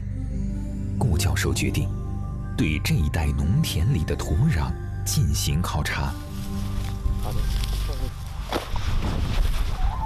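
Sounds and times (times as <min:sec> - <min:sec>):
wheat stalks rustling: 0:06.1 - 0:10.0.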